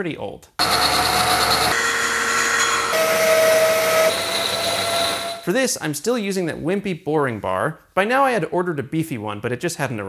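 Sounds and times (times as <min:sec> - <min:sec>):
metal lathe cutting: 0:00.6 - 0:05.5
shop vac running: 0:00.6 - 0:05.5.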